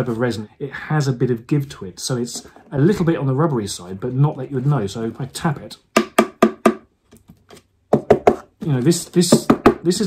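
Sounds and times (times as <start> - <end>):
knuckles knocking on hollow resin: 6.0 - 6.9, 7.9 - 8.5, 9.3 - 9.9.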